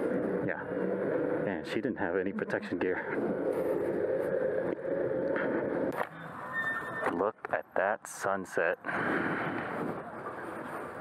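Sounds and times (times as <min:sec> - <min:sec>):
tyres on paved path: 0:00.0 - 0:11.0.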